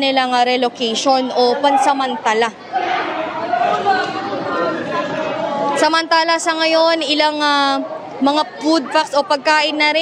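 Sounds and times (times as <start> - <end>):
people talking in a large hall: 0.0 - 10.0.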